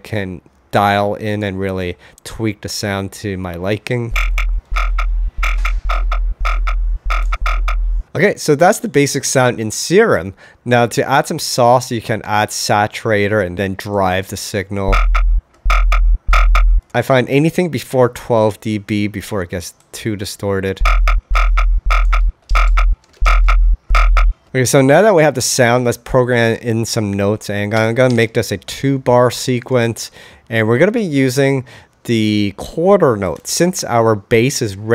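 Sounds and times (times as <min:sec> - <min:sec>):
distorted synth bass notes: 0:04.1 - 0:08.1, 0:14.9 - 0:16.9, 0:20.8 - 0:24.4.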